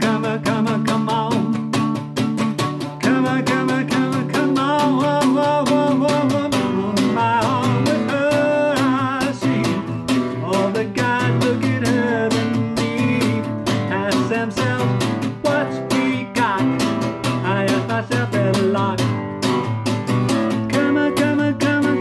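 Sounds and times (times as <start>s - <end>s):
person singing: 0.0s - 22.0s
strummed guitar: 0.0s - 22.0s.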